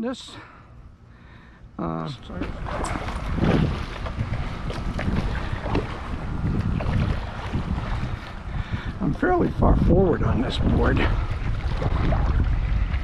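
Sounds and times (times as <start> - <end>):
wind rumbling on microphone: 2.1 - 13.0
water splashing against board: 2.3 - 8.6, 9.7 - 13.0.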